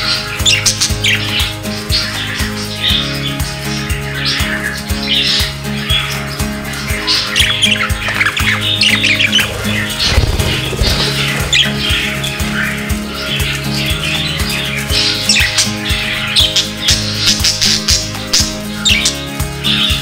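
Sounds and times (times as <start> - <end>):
background music with steady beat: 0.0 - 20.0
budgerigars chirping and squawking: 0.0 - 20.0.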